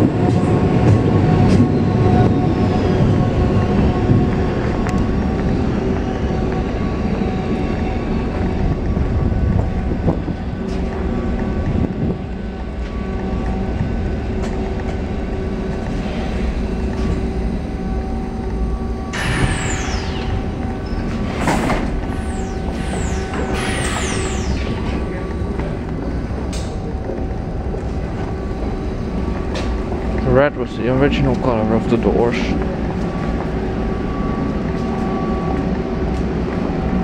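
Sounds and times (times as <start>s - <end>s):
metro train rumble: 0.0s - 37.0s
steady multi-tone hum: 0.0s - 37.0s
high falling whine: 1.5s - 37.0s.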